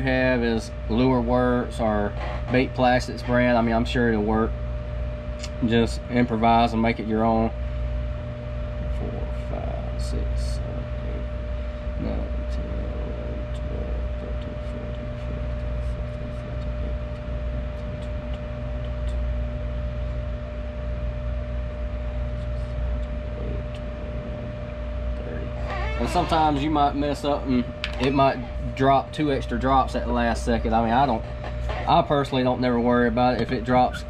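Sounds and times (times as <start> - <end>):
electrical hum with steady tone: 0.0 - 34.0.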